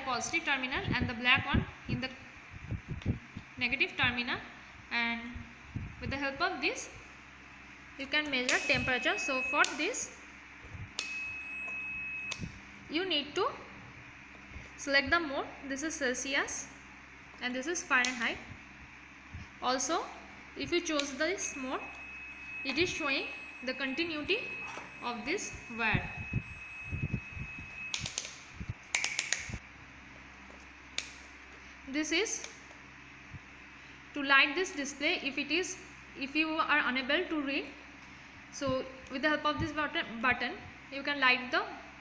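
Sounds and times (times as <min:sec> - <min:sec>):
meter dial and button clicks: 0:08.2 - 0:09.9, 0:11.0 - 0:12.6, 0:20.9 - 0:22.0, 0:23.7 - 0:29.6
multimeter continuity beep: 0:08.2 - 0:10.1, 0:11.0 - 0:12.7, 0:20.6 - 0:29.4.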